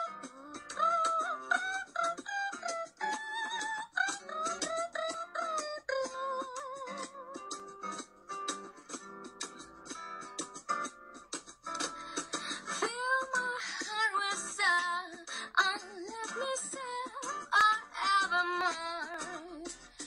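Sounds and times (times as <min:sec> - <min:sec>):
woman singing: 0:00.0 - 0:07.5, 0:12.7 - 0:20.0
plucked acoustic guitar: 0:00.0 - 0:20.0.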